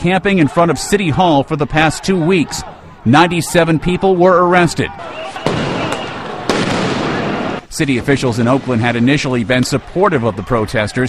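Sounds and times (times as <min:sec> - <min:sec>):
sharp bangs: 0:05.2 - 0:09.7.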